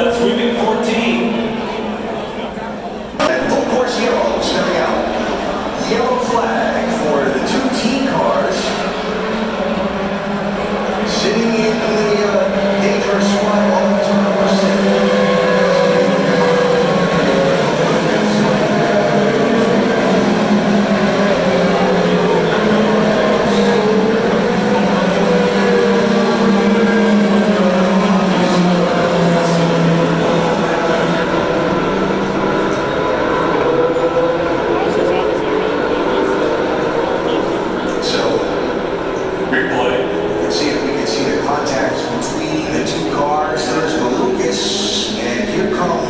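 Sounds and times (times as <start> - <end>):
race car engines droning: 0.0 - 46.0.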